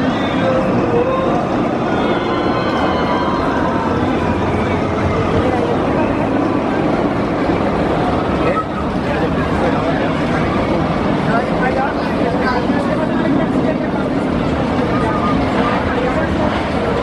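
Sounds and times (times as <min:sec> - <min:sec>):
people's voices: 0:00.0 - 0:17.0
roller coaster rumbling on track: 0:00.0 - 0:17.0.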